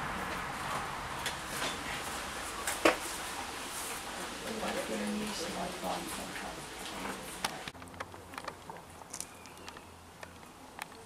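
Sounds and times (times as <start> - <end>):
faint outdoor background: 0.0 - 11.0.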